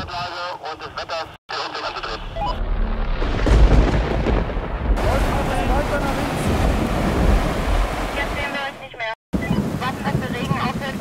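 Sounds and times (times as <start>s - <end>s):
wind buffeting microphone: 3.8s - 8.5s, 9.4s - 11.0s.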